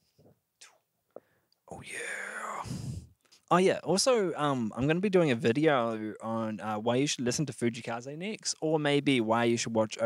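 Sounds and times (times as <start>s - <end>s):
person whispering: 1.7s - 3.1s.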